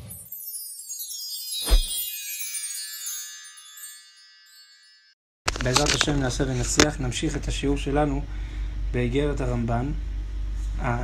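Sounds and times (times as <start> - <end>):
shimmering chime: 0.0 - 5.2.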